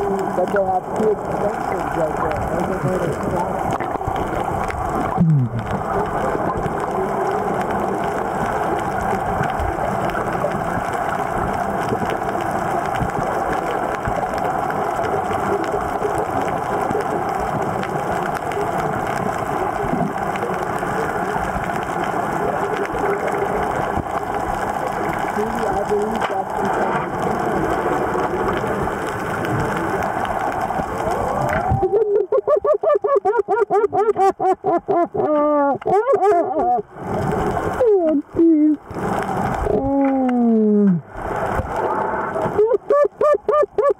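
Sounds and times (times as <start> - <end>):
muffled underwater noise: 0.0 - 43.9
pulsing warbling sound: 5.1 - 5.6.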